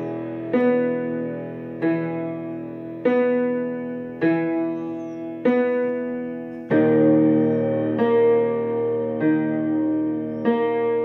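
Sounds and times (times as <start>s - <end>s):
digital piano playing slow chords: 0.0s - 11.0s.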